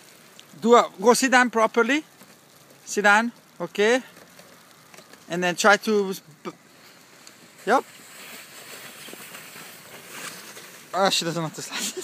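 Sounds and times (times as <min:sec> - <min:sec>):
crunches in snow: 0:00.0 - 0:12.0
sled sliding over snow: 0:00.0 - 0:12.0.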